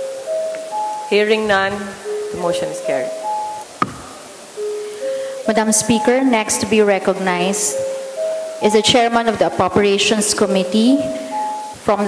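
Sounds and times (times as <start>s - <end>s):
faint steady tones: 0.0s - 12.0s
gavel knock: 3.8s - 4.1s.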